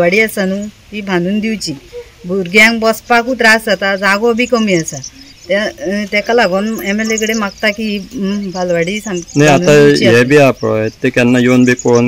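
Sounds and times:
woman speaking: 0.0 - 10.3.

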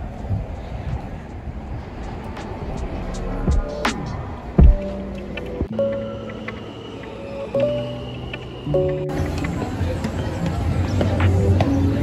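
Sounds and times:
city traffic rumble: 0.0 - 12.0.

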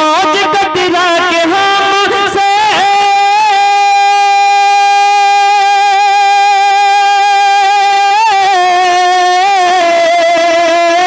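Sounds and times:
man singing a long note: 0.0 - 11.0.

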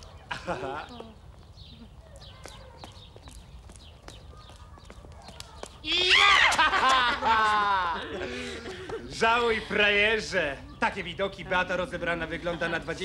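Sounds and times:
footsteps walking: 0.8 - 6.3.

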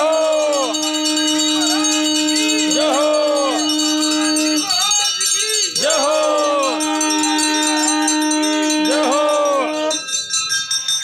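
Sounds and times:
strong steady held note: 0.0 - 4.9, 5.9 - 10.0
ringing bell-like tones: 0.0 - 11.0.

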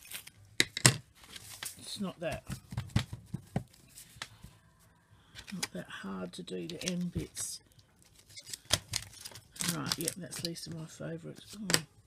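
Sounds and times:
paper rustling: 1.2 - 2.0.

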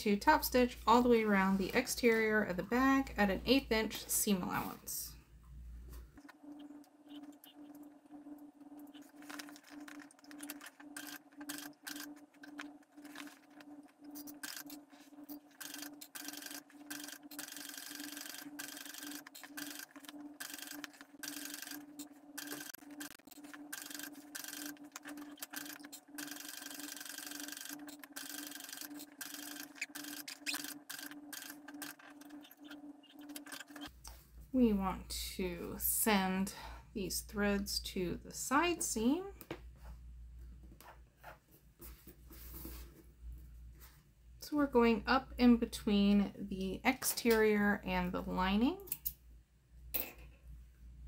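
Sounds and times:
sewing machine stitching: 10.4 - 13.3, 14.2 - 32.7.

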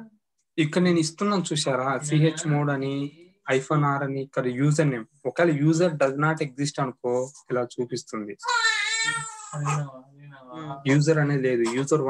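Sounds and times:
man speaking: 0.6 - 8.4, 10.8 - 12.0
high-pitched wavering vocal cry: 8.4 - 10.0.

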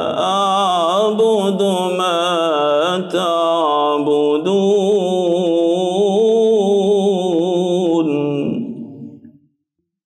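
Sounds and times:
man chanting into microphone: 0.0 - 9.1.

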